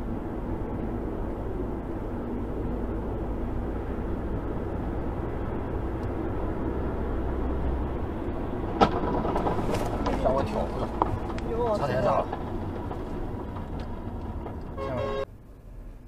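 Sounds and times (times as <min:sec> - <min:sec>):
car road and engine noise: 0:00.0 - 0:16.0
rattling and clatter: 0:08.5 - 0:14.8.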